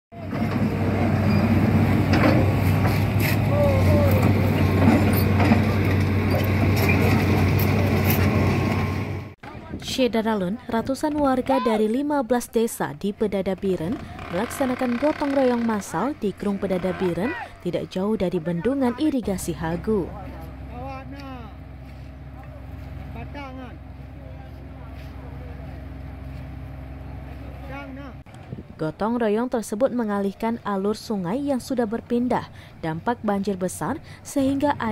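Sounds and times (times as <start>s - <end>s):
excavator diesel engine running: 0.2s - 9.4s, 12.9s - 28.2s, 31.2s - 34.9s
people's voices and calls: 3.1s - 6.4s, 9.4s - 34.9s.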